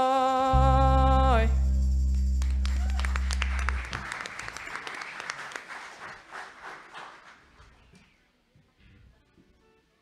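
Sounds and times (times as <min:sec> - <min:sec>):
congregation applause: 0:02.4 - 0:07.9.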